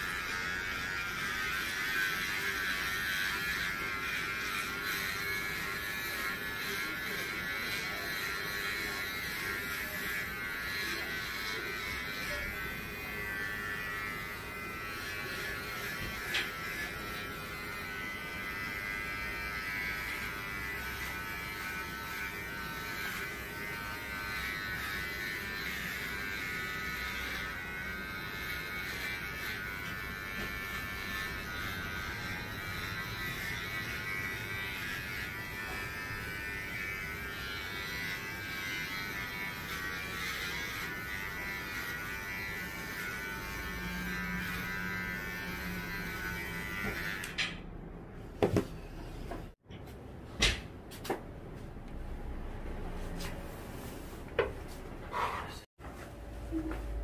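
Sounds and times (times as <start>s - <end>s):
electric hair clippers buzzing: 0.0s - 47.7s.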